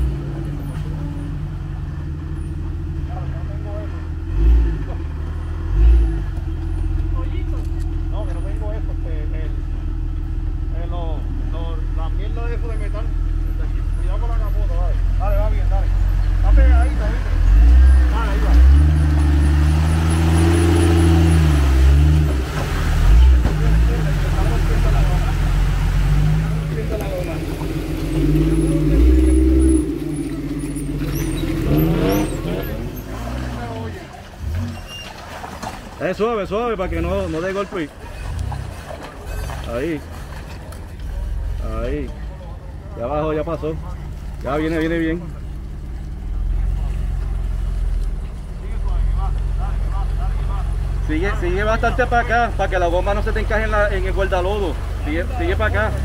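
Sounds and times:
off-road engine running and revving: 0.0s - 56.0s.

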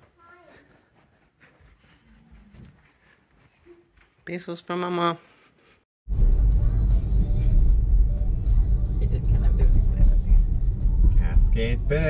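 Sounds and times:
road rumble inside car: 6.5s - 12.0s.

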